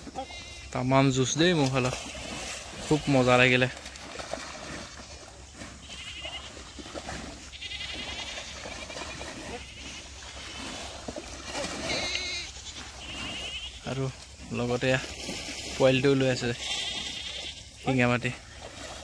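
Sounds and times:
wavering high-pitched animal calls: 11.8 - 13.8.

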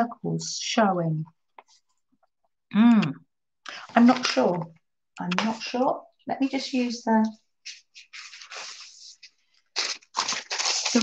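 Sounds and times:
thin paper rustling and crackling: 7.6 - 11.0.

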